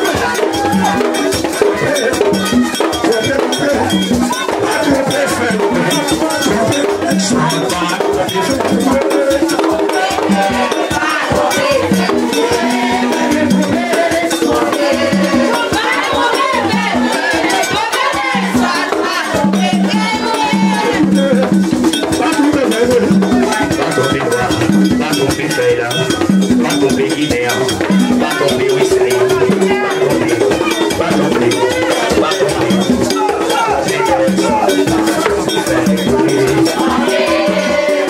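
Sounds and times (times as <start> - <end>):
fast percussion: 0.0 - 38.0
metallic bell-like beat: 0.0 - 38.0
people singing into microphones: 0.0 - 38.0.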